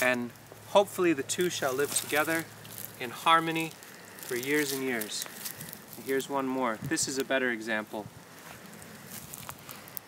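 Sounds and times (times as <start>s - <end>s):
faint rustling of stems: 0.0s - 10.0s.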